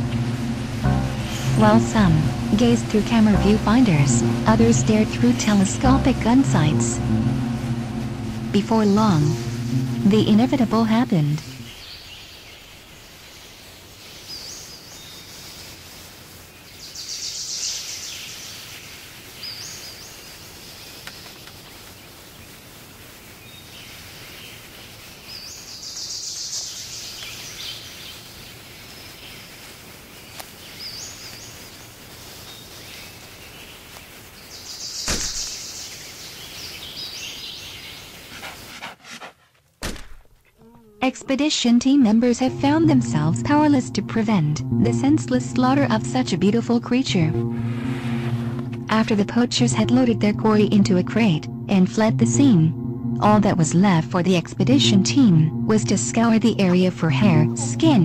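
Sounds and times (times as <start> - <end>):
sudden high hissing burst: 0.0 - 11.8, 47.5 - 48.8
steady background hiss: 0.0 - 38.3
sharp crack: 35.0 - 35.8, 39.8 - 40.4.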